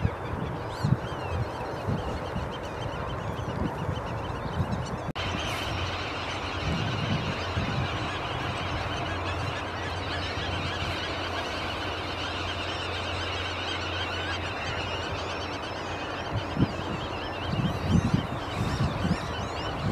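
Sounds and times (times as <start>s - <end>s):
many birds calling: 0.0s - 19.9s.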